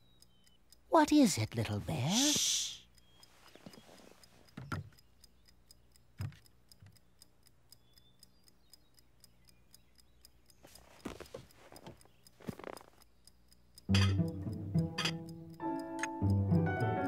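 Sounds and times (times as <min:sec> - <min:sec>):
pocket watch ticking: 0:00.0 - 0:17.0.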